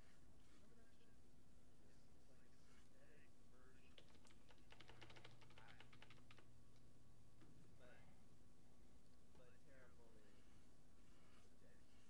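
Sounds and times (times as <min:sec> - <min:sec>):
computer keyboard clicking: 0:03.9 - 0:06.5.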